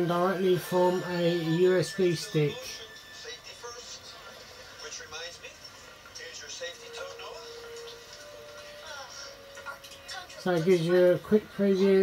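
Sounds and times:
background music: 0:00.0 - 0:12.0
tv dialogue through small speaker: 0:00.0 - 0:12.0.

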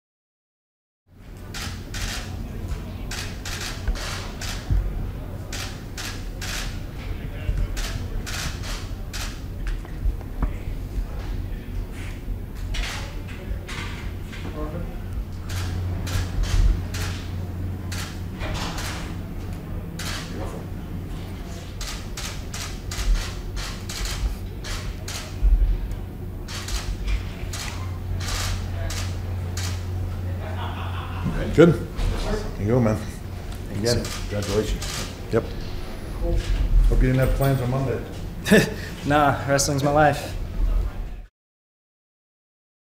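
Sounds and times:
steady low hum: 0:01.1 - 0:41.3
camera shutters clicking: 0:01.5 - 0:02.3, 0:03.1 - 0:04.8, 0:05.5 - 0:06.8, 0:07.7 - 0:09.4, 0:15.5 - 0:20.4, 0:21.8 - 0:25.4, 0:26.5 - 0:29.9, 0:33.8 - 0:35.2
low background rumble: 0:01.5 - 0:37.1.

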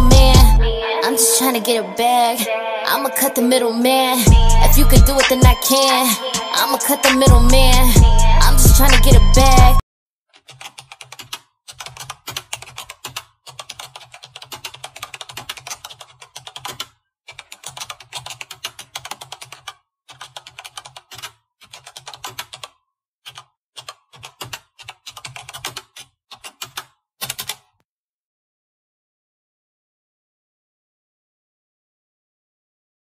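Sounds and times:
keyboard typing clicks: 0:10.4 - 0:27.7.

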